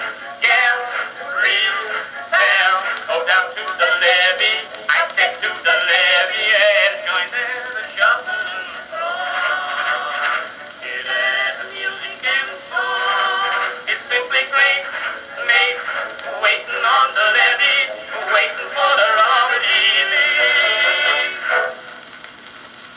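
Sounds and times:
male vocal duet with instruments: 0.0 - 21.9
faint surface hiss: 0.0 - 22.9.

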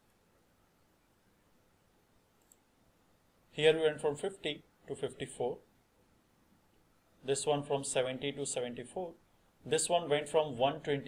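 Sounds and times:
faint click: 2.4 - 2.7.

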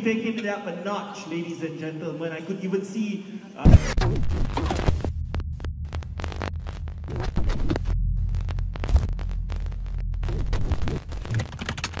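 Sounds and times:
low steady hum: 3.7 - 11.3
glitchy crackling and clicking: 3.7 - 12.0.

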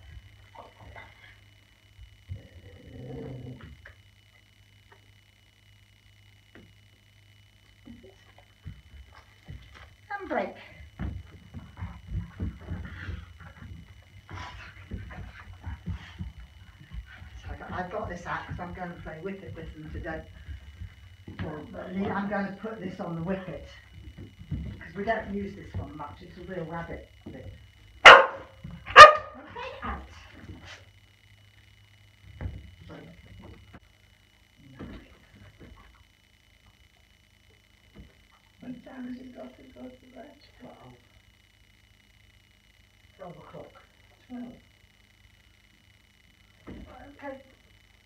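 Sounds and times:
dog's paws thudding on a rug: 8.4 - 10.0, 10.6 - 22.8, 23.6 - 27.6
dog barking: 28.0 - 29.4.

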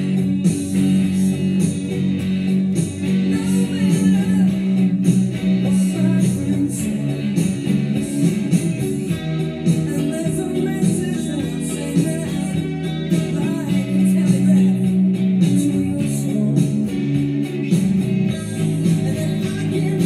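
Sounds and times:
electric guitar playing: 0.0 - 20.0
steady drum beat: 0.0 - 20.0.

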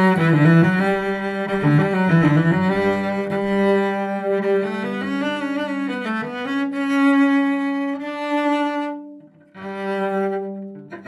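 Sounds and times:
bowed cello: 0.0 - 11.0.

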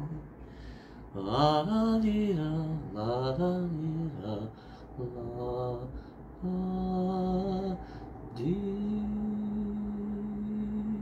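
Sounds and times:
man singing unaccompanied: 0.0 - 0.3, 1.1 - 11.0.

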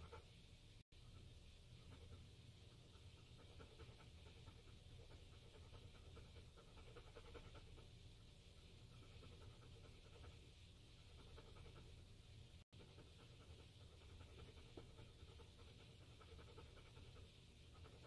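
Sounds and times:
low steady hum: 0.0 - 18.0
dog panting: 1.0 - 18.0.

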